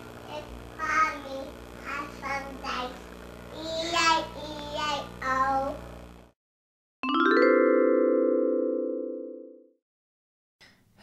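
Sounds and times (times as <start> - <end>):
electrical hum: 0.0 - 6.4
child singing: 0.3 - 5.8.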